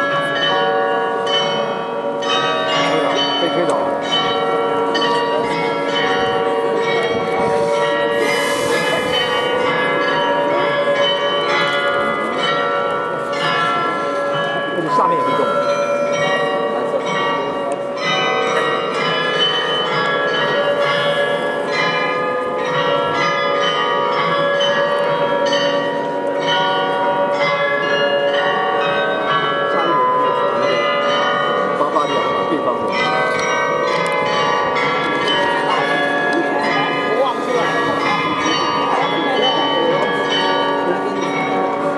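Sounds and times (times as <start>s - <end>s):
carillon bells playing a tune: 0.0s - 41.9s.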